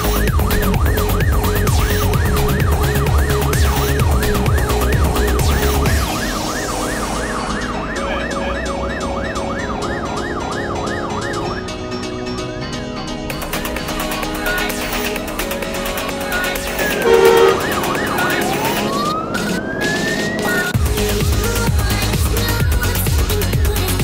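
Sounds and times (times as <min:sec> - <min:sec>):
fire engine siren yelping: 0:00.0 - 0:21.6
electronic music with steady beat: 0:00.0 - 0:24.0.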